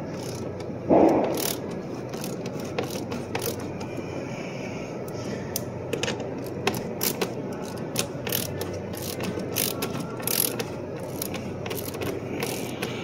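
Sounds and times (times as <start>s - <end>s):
ratchet wrench clicking: 0.1s - 3.9s, 5.5s - 13.0s.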